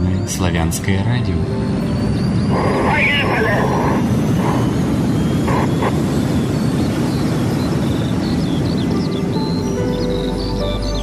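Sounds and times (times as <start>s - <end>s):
birdsong chirping: 0.0s - 11.0s.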